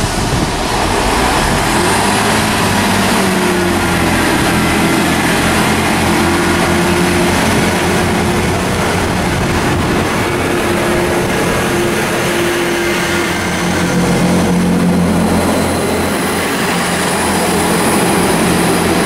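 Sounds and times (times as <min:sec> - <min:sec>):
diesel train engine drone: 0:00.0 - 0:19.0
wheel and rail rumble: 0:00.0 - 0:19.0.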